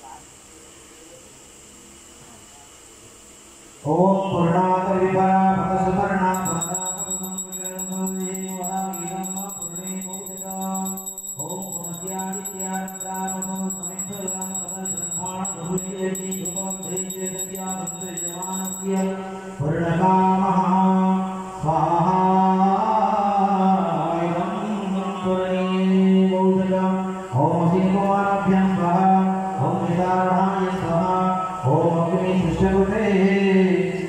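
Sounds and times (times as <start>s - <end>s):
thin high ringing: 6.3s - 19.4s.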